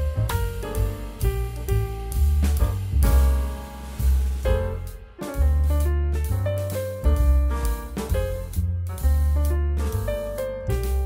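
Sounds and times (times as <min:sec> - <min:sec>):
instrumental music with heavy bass: 0:00.0 - 0:11.0.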